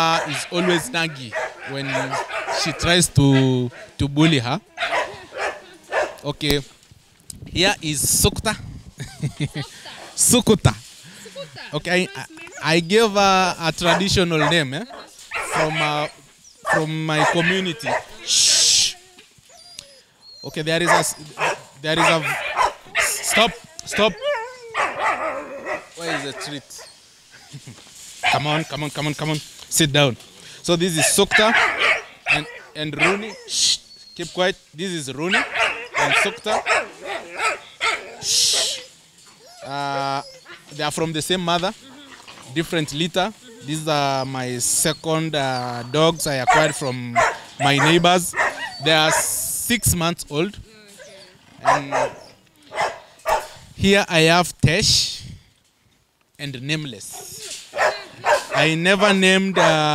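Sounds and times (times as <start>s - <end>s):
dog whining and warbling: 0.0s - 6.1s, 11.4s - 13.2s, 13.8s - 27.0s, 31.0s - 34.4s, 35.3s - 40.9s, 41.6s - 49.5s, 50.6s - 53.4s, 57.2s - 59.9s.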